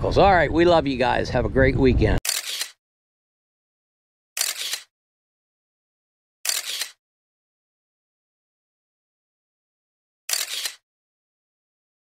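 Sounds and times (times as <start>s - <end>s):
man's voice: 0.0s - 2.2s
camera shutter snap: 2.2s - 2.8s, 4.4s - 4.9s, 6.4s - 7.0s, 10.3s - 10.8s.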